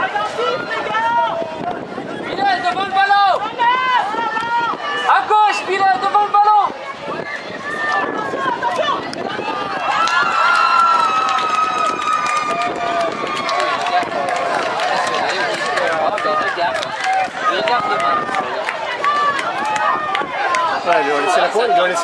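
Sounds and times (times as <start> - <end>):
long drawn-out shout: 6.4 - 15.1
children and spectators cheering: 7.1 - 22.0.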